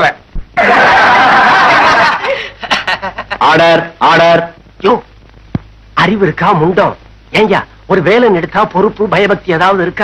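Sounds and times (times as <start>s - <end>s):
crowd laughing: 0.6s - 3.5s.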